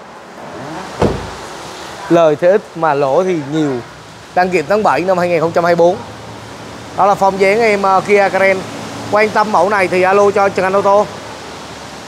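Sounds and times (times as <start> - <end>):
car door shutting: 0.9 - 1.8.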